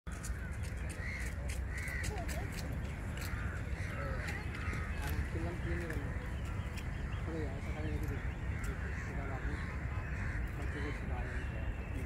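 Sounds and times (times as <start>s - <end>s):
crows cawing: 0.1s - 12.0s.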